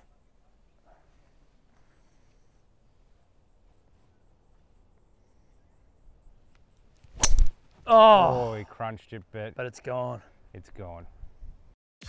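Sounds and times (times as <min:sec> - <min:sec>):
golf club striking ball: 0:07.2 - 0:07.6
man shouting: 0:07.9 - 0:08.7.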